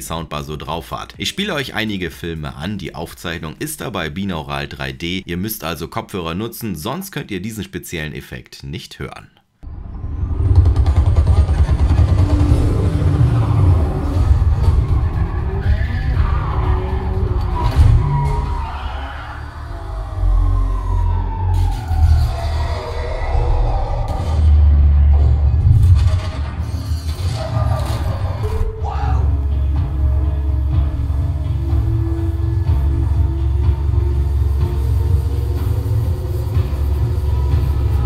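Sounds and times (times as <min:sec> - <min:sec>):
car engines: 0:09.7 - 0:18.7
music with deep bass: 0:09.7 - 0:18.8, 0:28.4 - 0:38.0.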